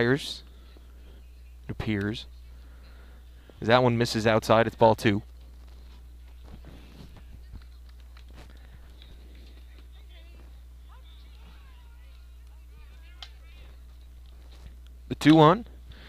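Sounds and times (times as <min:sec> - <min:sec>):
faint indistinct background sounds: 0:00.0 - 0:15.8
low electrical hum: 0:00.0 - 0:16.0.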